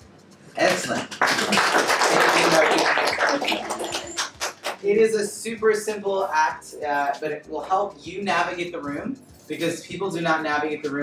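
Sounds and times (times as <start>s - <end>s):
audience applauding: 0.6s - 4.8s.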